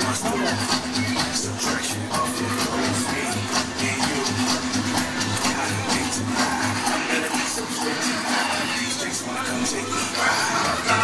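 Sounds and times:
loud fairground ride music: 0.0 - 11.0.

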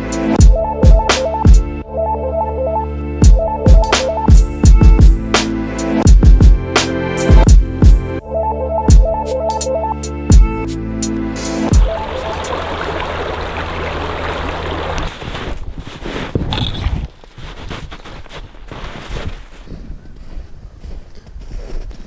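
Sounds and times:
electronic music with hissing wash: 0.0 - 15.1
clothing and gear rustling: 15.1 - 22.0
footsteps crunching through snow: 15.1 - 22.0.

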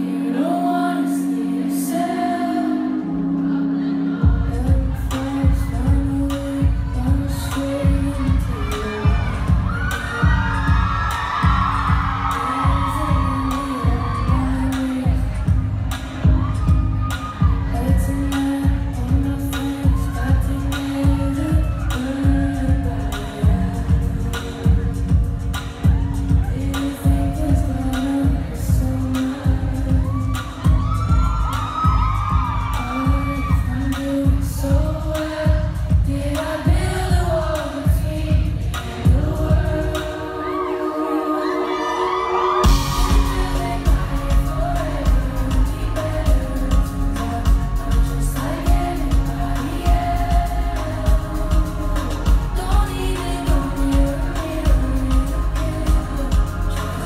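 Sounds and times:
crowd shouting and cheering: 0.0 - 57.0
live pop band playing: 0.0 - 57.0
woman singing: 0.0 - 57.0
kick drum beat: 9.1 - 14.5.

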